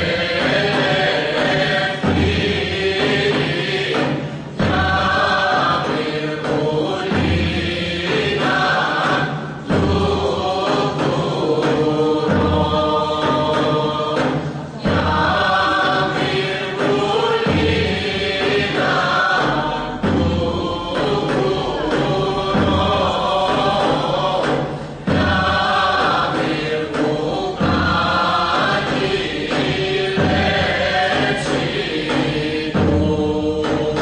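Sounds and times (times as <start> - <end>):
group singing folk song: 0.0 - 34.0.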